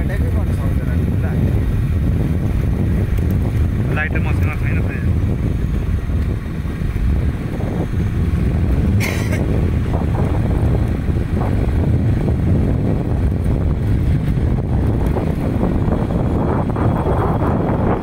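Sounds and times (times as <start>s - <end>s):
vehicle rumble: 0.0s - 18.0s
wind buffeting microphone: 0.0s - 18.0s.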